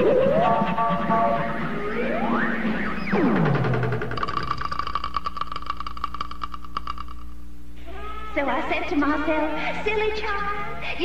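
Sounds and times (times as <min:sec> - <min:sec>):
fast even clicking: 0:03.6 - 0:07.4.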